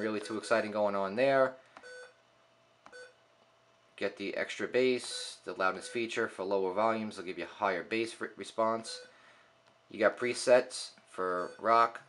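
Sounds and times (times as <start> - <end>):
short electronic beeps: 1.8 - 2.2, 2.9 - 3.2.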